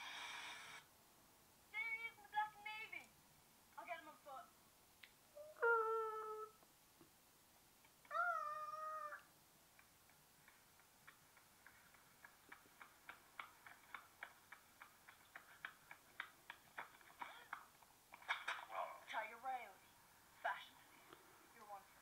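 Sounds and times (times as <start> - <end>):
cat meowing: 8.1 - 9.3.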